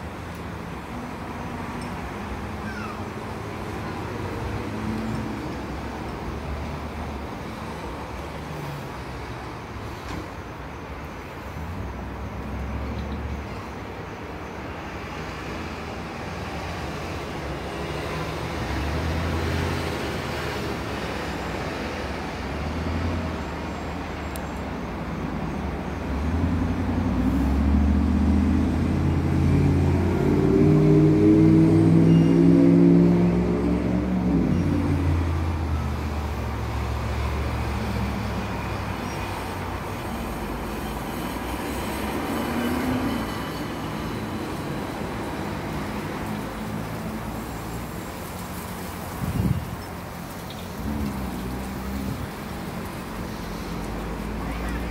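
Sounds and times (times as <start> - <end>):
road traffic: 0.0 - 54.9
large vehicle engine passing: 26.1 - 47.8.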